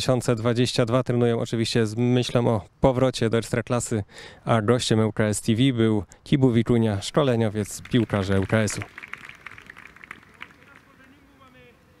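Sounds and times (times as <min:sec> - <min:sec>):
distant men's voices: 0:07.3 - 0:12.0.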